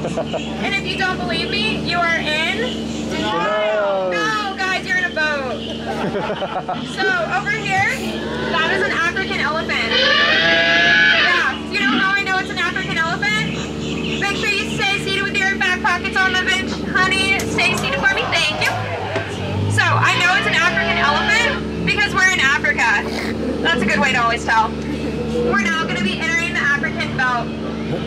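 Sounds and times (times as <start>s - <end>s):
boat motor humming: 0.0s - 28.0s.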